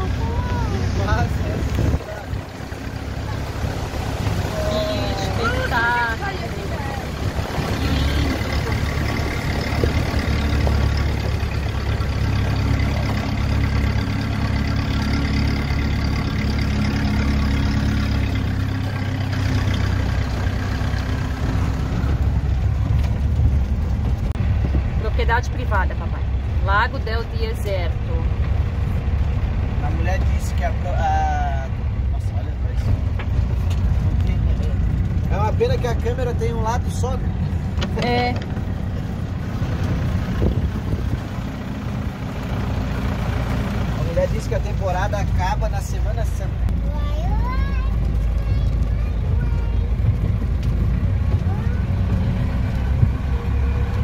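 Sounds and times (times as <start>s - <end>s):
engine and road rumble: 0.0s - 54.0s.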